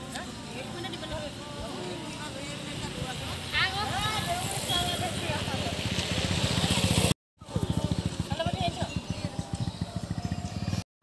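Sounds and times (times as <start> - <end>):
people talking: 0.0 - 5.9, 7.4 - 10.3
road traffic: 0.0 - 10.9
motorcycle engine passing: 0.6 - 10.9.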